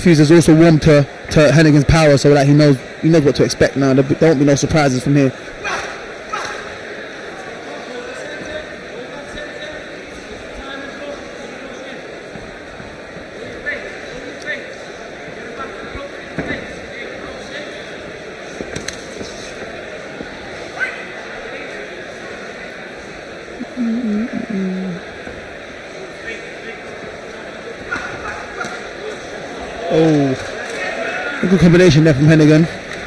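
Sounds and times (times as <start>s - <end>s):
crowd hubbub in a hall: 0.0s - 33.0s.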